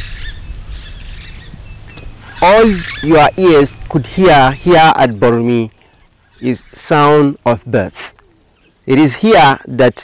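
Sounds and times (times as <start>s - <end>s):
birds chirping: 0.0s - 10.0s
low outdoor rumble: 0.0s - 10.0s.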